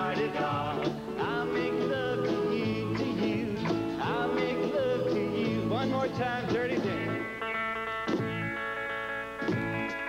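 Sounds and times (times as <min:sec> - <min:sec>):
acoustic guitar: 0:00.0 - 0:10.0
upright bass: 0:00.0 - 0:10.0.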